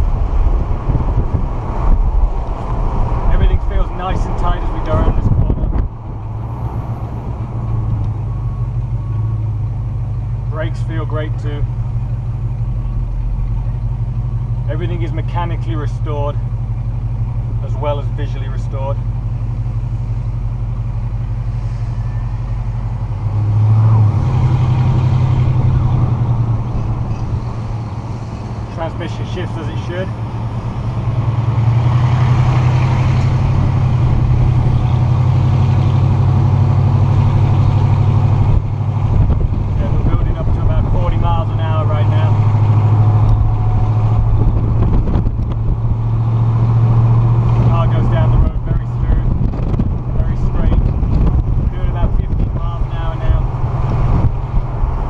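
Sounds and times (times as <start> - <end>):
car engine running: 0.0 - 55.0.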